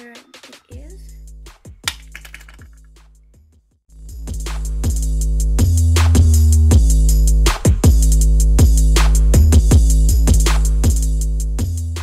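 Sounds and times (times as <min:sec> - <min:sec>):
hip-hop beat: 0:00.0 - 0:02.6, 0:04.0 - 0:12.0.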